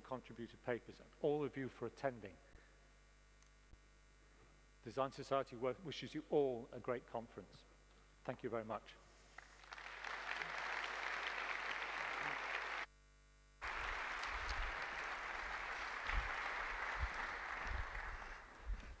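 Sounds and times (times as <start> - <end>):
audience applauding: 9.4 - 12.9, 13.6 - 19.0.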